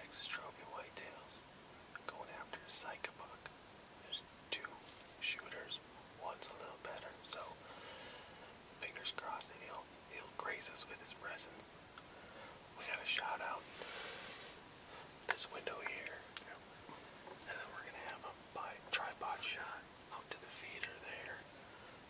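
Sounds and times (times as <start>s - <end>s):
man whispering: 0.0s - 7.8s, 8.8s - 11.6s, 12.8s - 14.6s, 15.2s - 16.7s, 17.4s - 21.6s.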